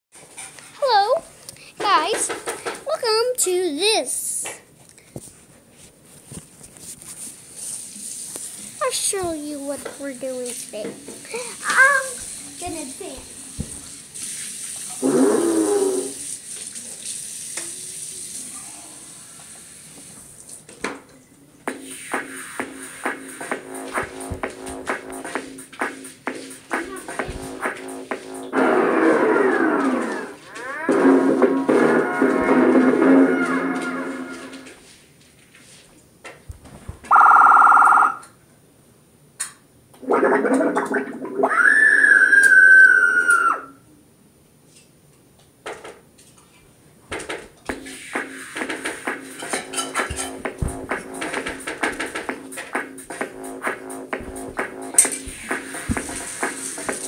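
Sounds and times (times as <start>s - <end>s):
quiet room noises: 0.2s - 57.0s
child shouting wordlessly: 0.8s - 1.2s, 11.4s - 13.2s.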